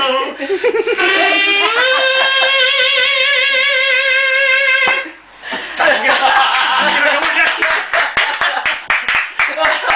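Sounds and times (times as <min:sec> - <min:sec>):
voices: 0:00.0 - 0:08.6
hands clapping: 0:05.8 - 0:09.9.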